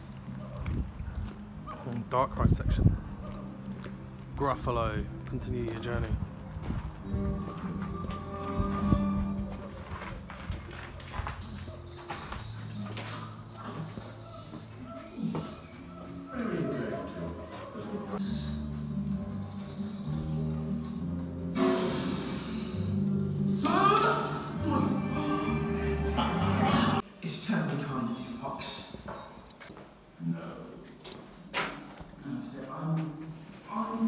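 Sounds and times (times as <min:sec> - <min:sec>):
background music: 0:00.0 - 0:28.8.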